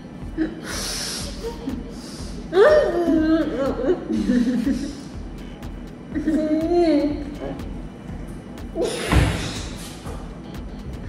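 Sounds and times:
loud thud: 9.0 - 9.6.

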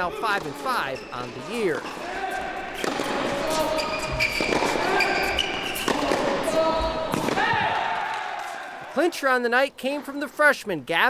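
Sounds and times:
racket hitting tennis ball: 1.8 - 8.6
ball bouncing on hard court: 2.4 - 7.8
spectators shouting and cheering: 6.1 - 9.0.

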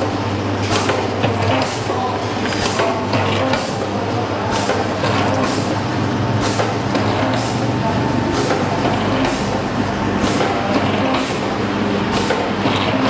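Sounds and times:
steady electrical hum: 0.0 - 13.0.

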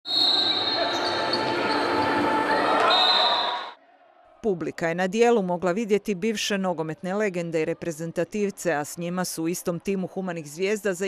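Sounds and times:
echoing voices: 0.4 - 11.0.

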